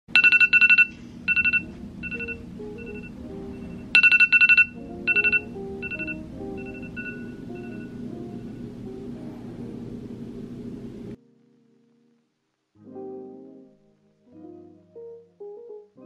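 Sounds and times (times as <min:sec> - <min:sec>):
phone alarm high beeps: 0:00.1 - 0:08.0.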